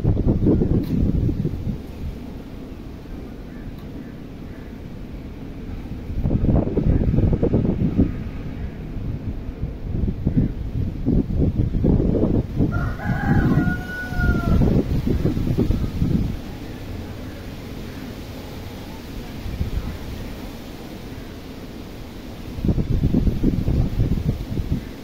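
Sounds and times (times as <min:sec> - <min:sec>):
wind buffeting microphone: 0:00.0 - 0:25.0
rooster crowing: 0:12.6 - 0:16.1.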